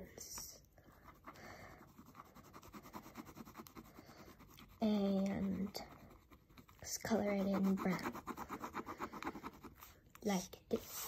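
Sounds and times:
pen scratching on paper: 1.0s - 10.0s.

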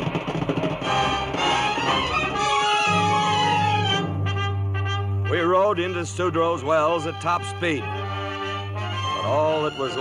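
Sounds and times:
rapid beats: 0.0s - 5.2s
strong bass: 0.9s - 8.1s
orchestral strings sweeping: 0.9s - 10.0s.

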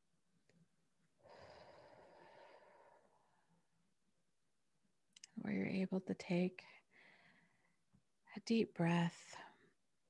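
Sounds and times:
woman breathing faintly: 1.2s - 3.6s, 6.6s - 7.9s.

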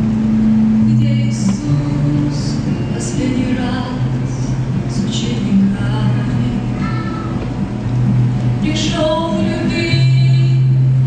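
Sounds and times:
acoustic guitar: 0.0s - 11.0s
woman singing: 0.8s - 7.3s, 8.6s - 11.0s.

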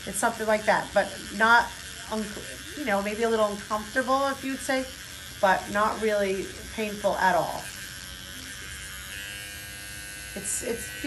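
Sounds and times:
microneedling pen buzzing: 0.0s - 11.0s.

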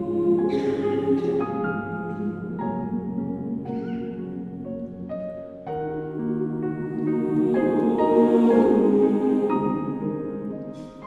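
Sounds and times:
choir singing lullaby: 0.0s - 11.0s
piano: 0.0s - 11.0s.

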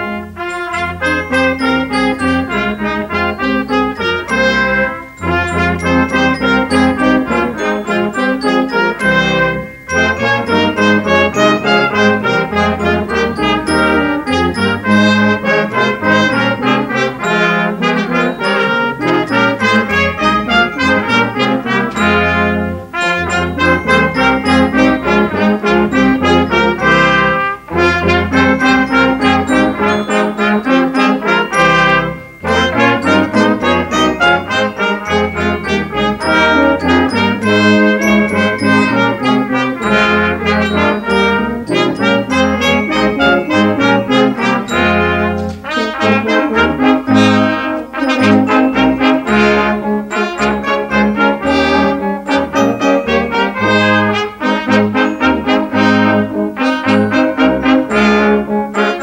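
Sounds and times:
brass ensemble playing: 0.0s - 59.0s.

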